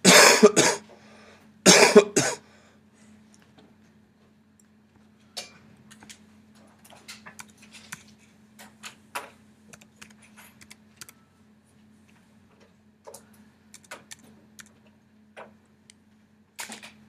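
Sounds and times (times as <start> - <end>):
steady low hum: 0.0 - 17.0
computer keyboard keystrokes: 7.3 - 8.1, 9.7 - 11.2, 13.1 - 14.9.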